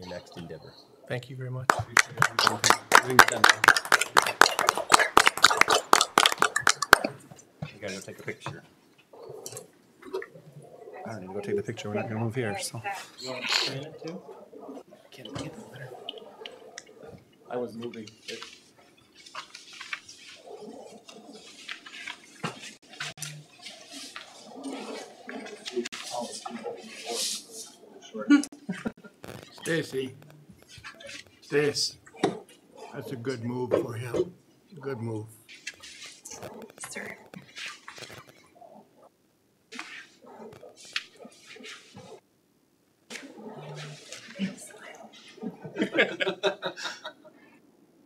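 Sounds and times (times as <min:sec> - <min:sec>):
people applauding: 0:01.7 - 0:07.2
indistinct chatter of voices: 0:09.2 - 0:19.1, 0:20.2 - 0:28.6.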